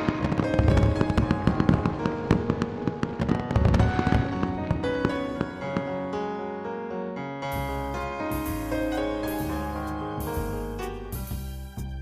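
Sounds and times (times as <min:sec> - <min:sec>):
fireworks popping and booming: 0:00.0 - 0:06.1
music: 0:00.0 - 0:12.0.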